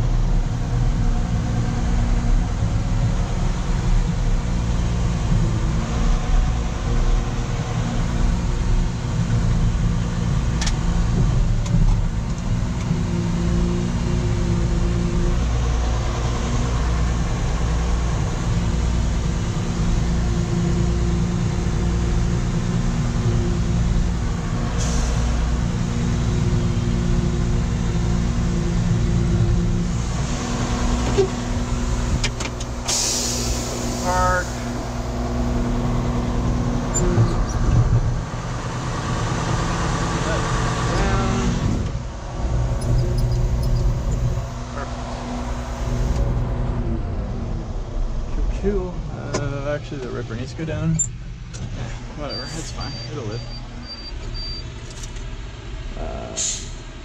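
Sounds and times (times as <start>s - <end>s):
diesel engine running: 0.0s - 57.0s
sharp hiss: 32.8s - 34.8s.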